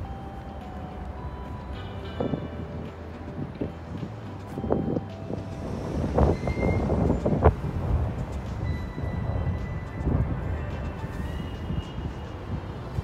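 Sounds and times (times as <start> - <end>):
traffic rumble: 0.0 - 13.0.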